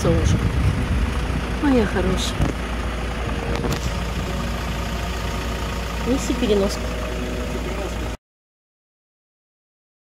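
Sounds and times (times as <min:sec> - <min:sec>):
vehicle engine idling: 0:00.0 - 0:08.2.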